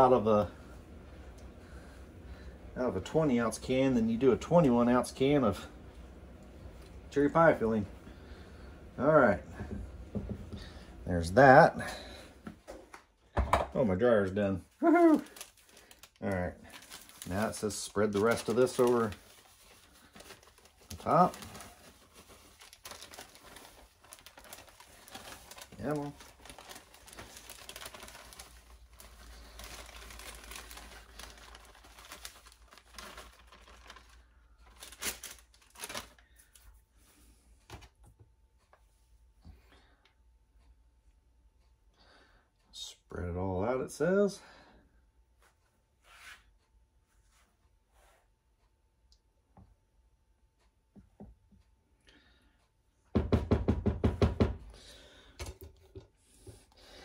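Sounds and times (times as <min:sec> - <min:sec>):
plastic bag crinkling: 0:14.7 - 0:36.6
sharp plastic crackles: 0:14.8 - 0:36.6.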